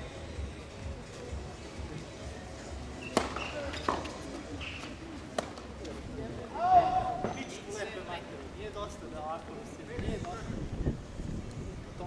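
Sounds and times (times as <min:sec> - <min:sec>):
tennis ball struck by rackets: 0:03.0 - 0:05.7.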